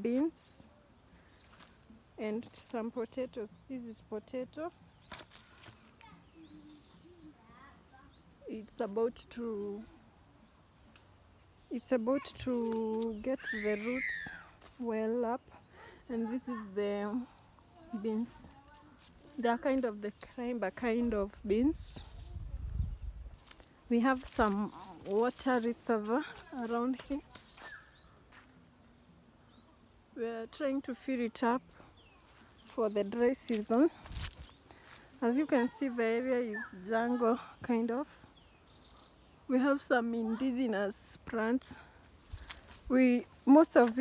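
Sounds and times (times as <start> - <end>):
high-pitched insect hum: 0.0 - 44.0
bird chirps: 4.9 - 7.3, 26.4 - 28.4, 37.8 - 39.4.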